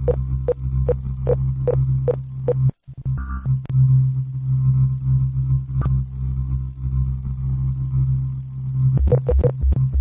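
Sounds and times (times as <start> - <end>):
low electronic drone: 0.0 - 10.0.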